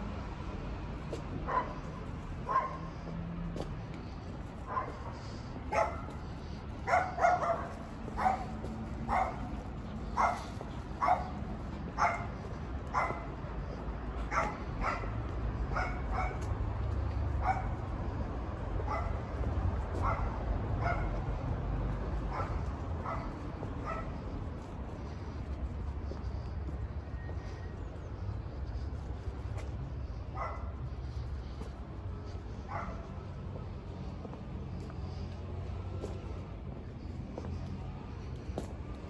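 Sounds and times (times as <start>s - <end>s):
dog barking: 1.4s - 3.1s, 4.6s - 16.5s, 17.4s - 17.9s, 18.8s - 21.2s, 22.2s - 24.2s, 30.3s - 31.0s, 32.7s - 33.2s.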